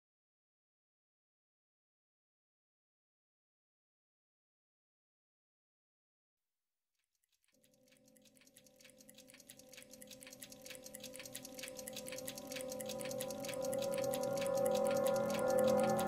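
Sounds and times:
fast pulsing: 0:07.6 - 0:16.0
sustained tone: 0:11.0 - 0:16.0.

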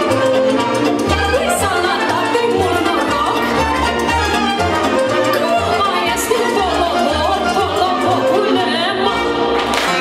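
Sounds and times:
trumpet: 0:00.0 - 0:10.0
woman singing into microphone: 0:05.4 - 0:09.3.

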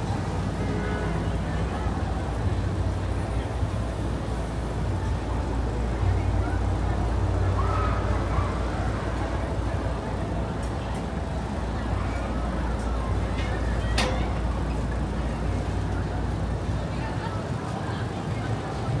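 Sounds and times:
indistinct voices of passers-by: 0:00.0 - 0:19.0
low rumble of traffic: 0:00.0 - 0:19.0.

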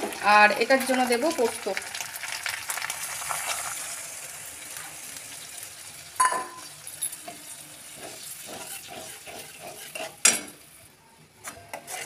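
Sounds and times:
oil sizzling: 0:00.0 - 0:10.8
metal spatula scraping pan: 0:07.1 - 0:10.6, 0:11.4 - 0:12.0.

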